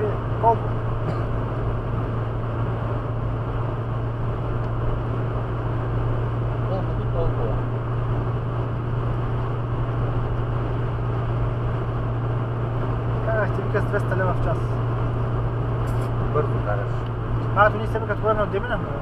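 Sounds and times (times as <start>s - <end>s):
car engine hum: 0.0s - 19.0s.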